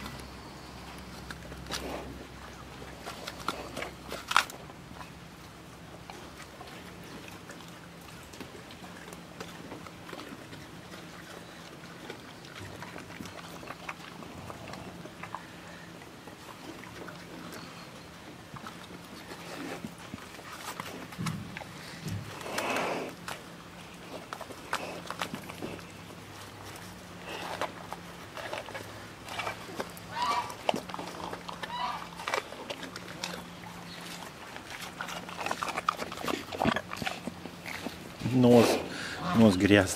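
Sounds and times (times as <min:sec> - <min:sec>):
bear chewing: 0:00.0 - 0:39.9.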